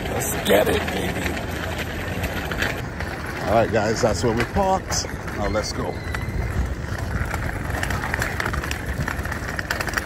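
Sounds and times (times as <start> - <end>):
cart wheels rattling over bricks: 0.0 - 10.0.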